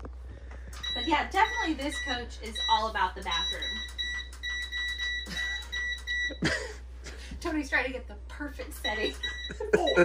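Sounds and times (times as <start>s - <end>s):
short control panel beeps: 0.8s - 6.4s, 8.8s - 9.6s.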